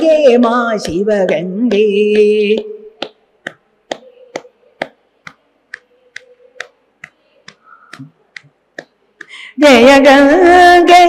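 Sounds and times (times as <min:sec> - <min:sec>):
hand-clapping in time: 0:02.1 - 0:09.4.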